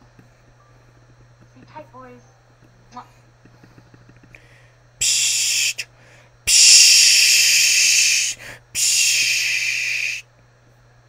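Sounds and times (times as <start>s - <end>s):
long loud hiss: 5.0s - 10.3s.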